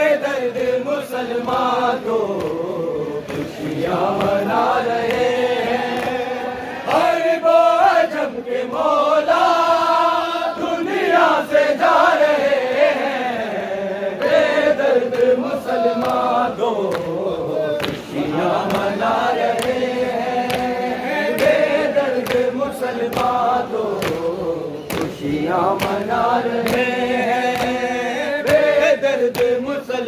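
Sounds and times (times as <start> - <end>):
men chanting a lament: 0.0 - 30.0.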